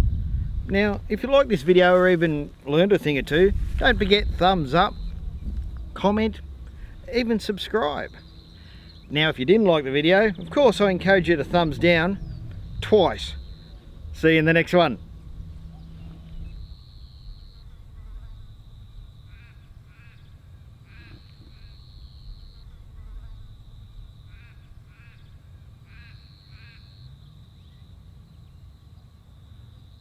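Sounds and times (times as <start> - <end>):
wind on microphone: 0.0 - 25.4
insects droning: 0.0 - 30.0.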